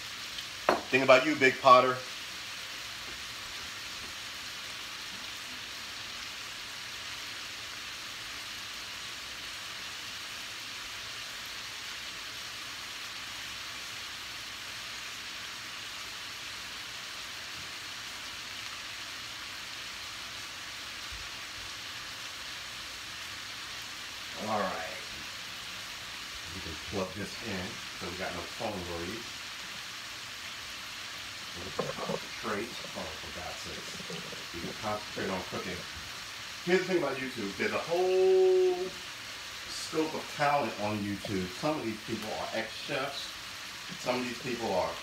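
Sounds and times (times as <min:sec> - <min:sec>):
sausage and onions sizzling: 0:00.0 - 0:45.0.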